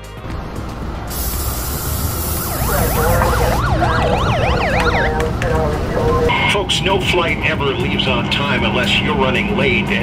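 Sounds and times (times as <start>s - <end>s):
city traffic rumble: 0.0s - 10.0s
loud hiss: 1.1s - 3.5s
siren yelping: 2.0s - 6.6s.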